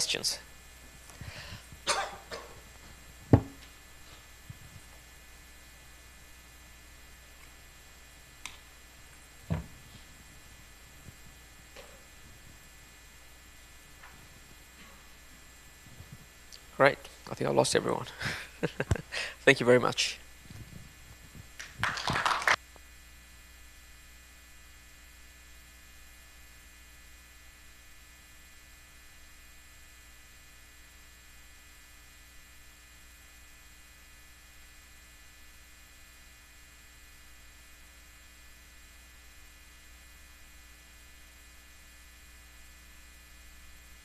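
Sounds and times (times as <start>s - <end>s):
low mains hum: 0.0s - 44.0s
man coughing into a microphone: 1.8s - 2.6s
audience applause: 21.6s - 22.6s.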